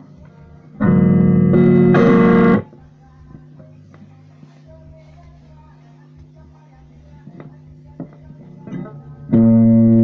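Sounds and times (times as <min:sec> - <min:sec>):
low steady hum: 0:00.0 - 0:10.0
electric guitar chord strummed: 0:00.8 - 0:02.6, 0:08.6 - 0:10.0.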